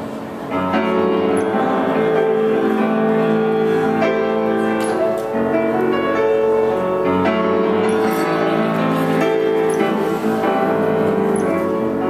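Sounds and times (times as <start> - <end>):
piano chords: 0.0 - 12.0.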